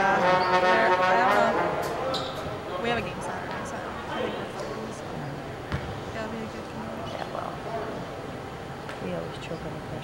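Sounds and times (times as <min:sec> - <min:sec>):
loud horn tone: 0:00.0 - 0:01.8
voices in a gym: 0:00.0 - 0:10.0.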